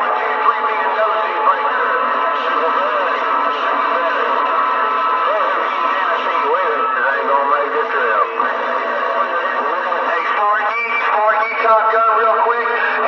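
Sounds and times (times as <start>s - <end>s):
garbled radio voices: 0.0s - 13.0s
whistling radio tones: 0.0s - 13.0s.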